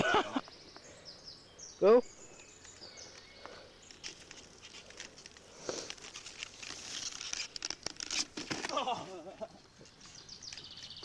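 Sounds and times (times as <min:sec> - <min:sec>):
high bird calls: 0:00.0 - 0:05.9.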